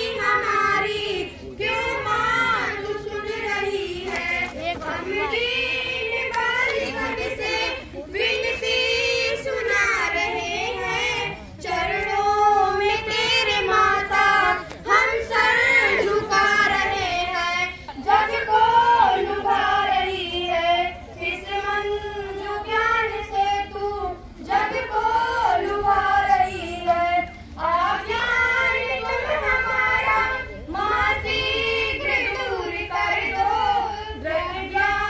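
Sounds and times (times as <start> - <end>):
girls singing into a microphone: 0.0 - 35.0.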